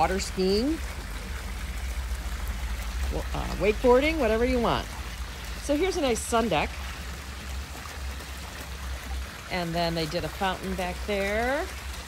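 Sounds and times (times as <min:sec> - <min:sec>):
water jet splashing: 0:00.0 - 0:12.0.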